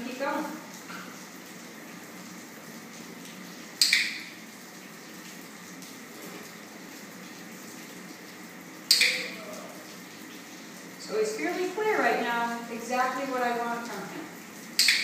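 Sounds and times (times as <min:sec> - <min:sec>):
dog-training clicker clicks: 0:03.8 - 0:04.2, 0:14.8 - 0:15.0.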